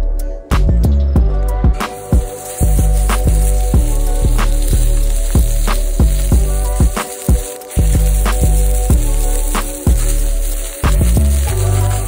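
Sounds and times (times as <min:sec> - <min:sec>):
background music with steady beat: 0:00.0 - 0:12.0
meat sizzling in hot oil: 0:01.9 - 0:12.0.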